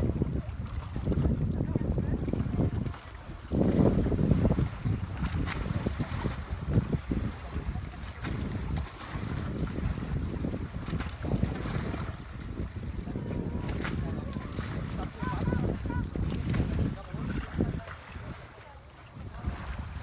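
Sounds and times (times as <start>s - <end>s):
wind buffeting microphone: 0.0s - 20.0s
faint voices: 0.1s - 3.5s, 5.9s - 9.2s, 11.1s - 20.0s.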